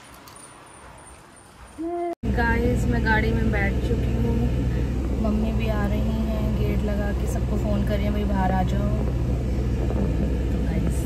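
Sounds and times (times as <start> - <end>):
car engine idling: 2.2 - 11.0.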